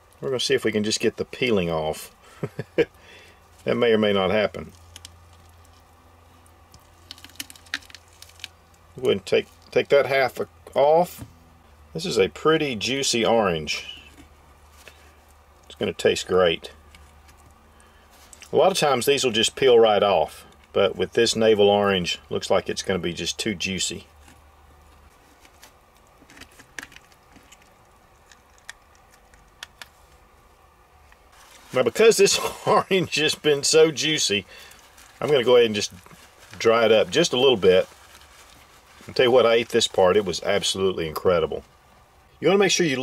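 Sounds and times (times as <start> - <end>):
orange being peeled: 2.5 - 11.3, 13.2 - 18.8, 24.0 - 41.9
orange peel and pulp tearing: 4.6 - 9.8.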